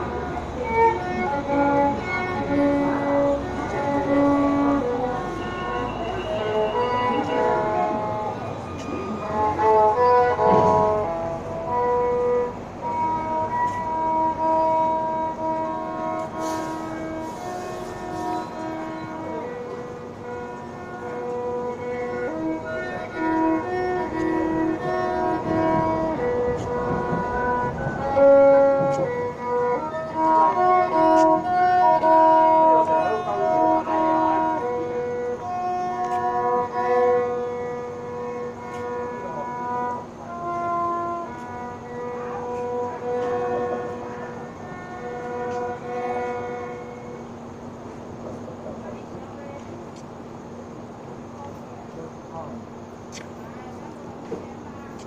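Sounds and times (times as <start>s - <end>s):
violin slow melody: 0.0s - 52.9s.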